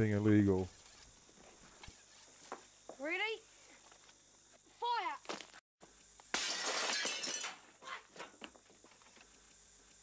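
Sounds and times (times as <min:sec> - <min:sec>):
glass shattering: 0:06.3 - 0:07.7.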